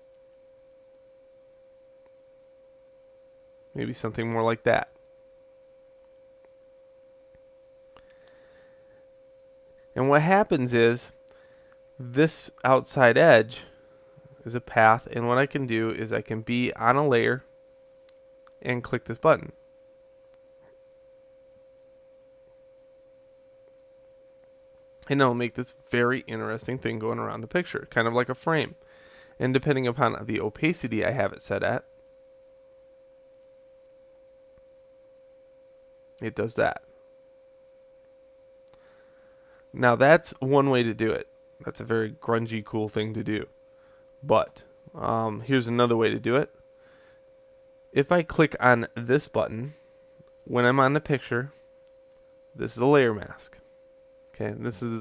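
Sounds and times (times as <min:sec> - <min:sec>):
faint electrical whine: 0:00.0 - 0:55.0
faint pure tone: 0:00.0 - 0:55.0.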